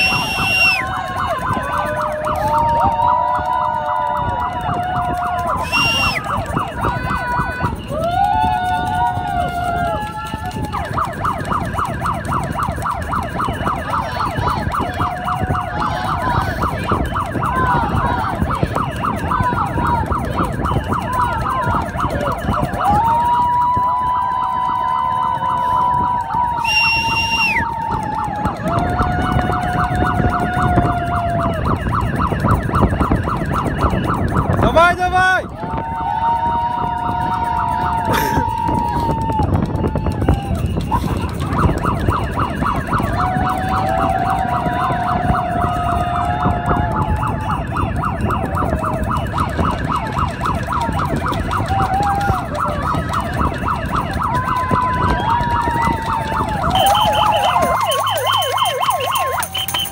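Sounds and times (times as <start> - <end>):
pea whistle blasts: 0.0 - 0.9, 5.6 - 6.3, 26.6 - 27.6, 59.4 - 59.9
fast even chatter: 0.0 - 59.9
plastic horns sounding: 5.4 - 7.9, 56.4 - 59.9.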